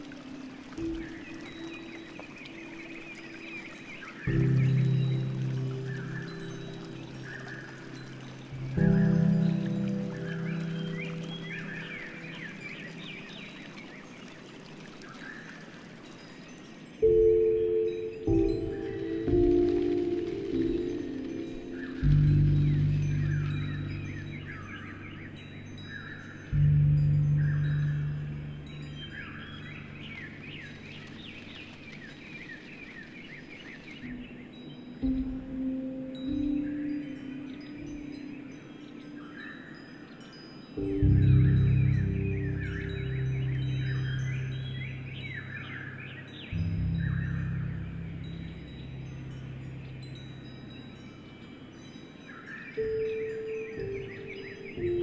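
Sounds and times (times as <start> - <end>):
slow piano music: 0.0 - 14.7, 16.2 - 32.1, 33.9 - 55.0
bird chirps: 0.0 - 55.0
running water: 0.0 - 55.0.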